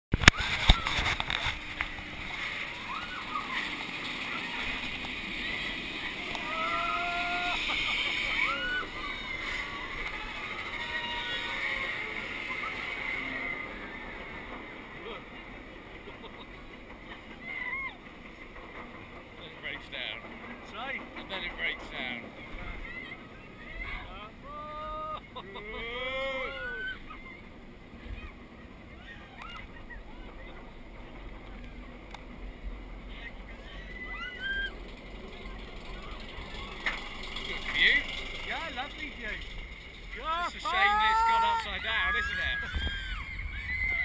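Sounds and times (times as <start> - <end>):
roller coaster rumble: 0.1 - 44.0
rider whooping: 2.6 - 14.4, 23.6 - 28.3, 33.0 - 44.0
loud shout: 6.4 - 12.2, 23.7 - 27.1, 40.2 - 44.0
indistinct riders' voices: 18.8 - 43.6.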